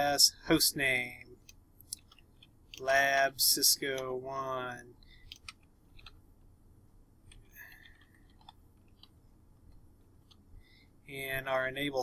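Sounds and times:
keystrokes on computer keyboard: 0:05.3 - 0:06.2.

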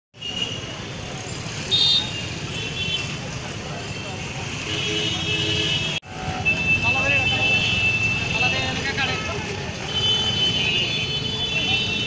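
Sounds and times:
street traffic noise: 0:00.1 - 0:12.0.

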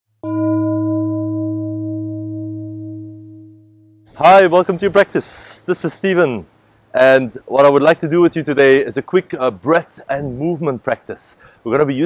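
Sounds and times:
singing bowl ringing: 0:00.2 - 0:04.1.

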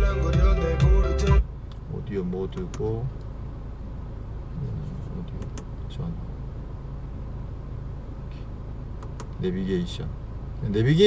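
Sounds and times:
car cabin rumble: 0:00.0 - 0:11.0
button clicks: 0:09.0 - 0:09.4.

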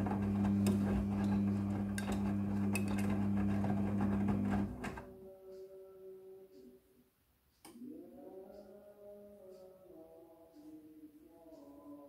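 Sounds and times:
washing machine motor whine: 0:00.0 - 0:05.1.

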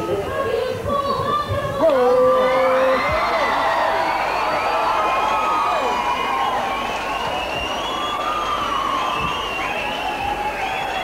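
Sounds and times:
crowd cheering and screaming: 0:01.8 - 0:11.0.

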